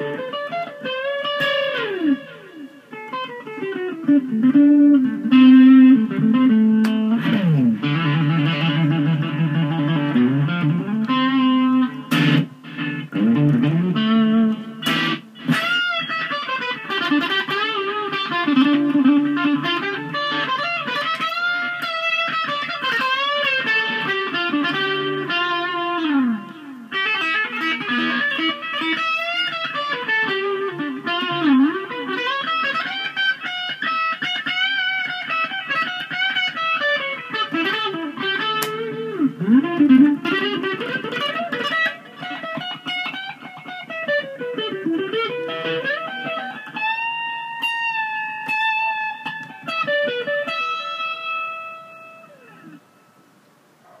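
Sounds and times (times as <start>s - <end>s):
electric guitar solo: 0.0s - 53.3s.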